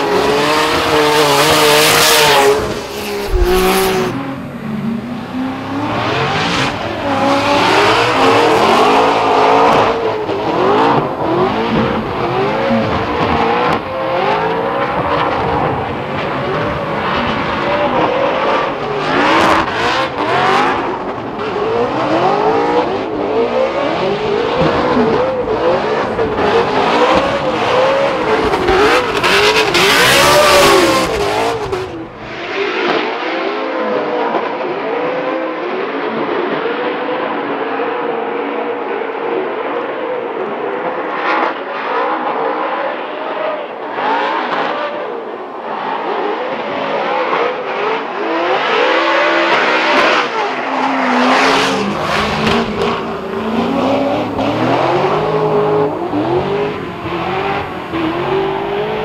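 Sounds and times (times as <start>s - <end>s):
race engines revving hard: 0.0s - 59.0s.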